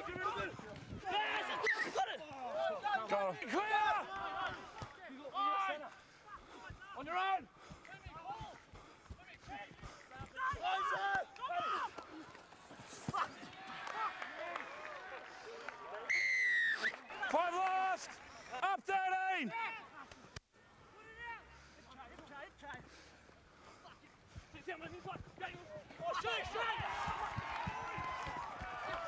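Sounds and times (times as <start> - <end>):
distant players shouting: 0.0 - 12.2, 24.5 - 29.0
referee's whistle: 16.1 - 17.0.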